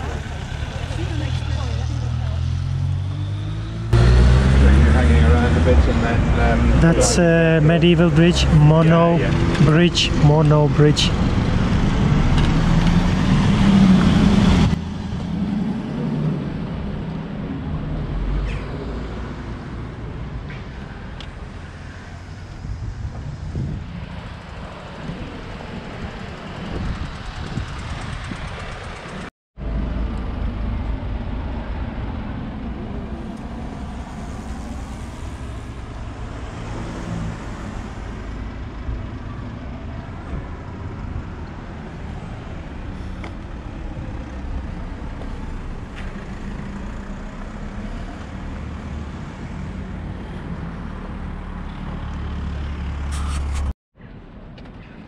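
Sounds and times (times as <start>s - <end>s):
road traffic passing: 0.0s - 55.0s.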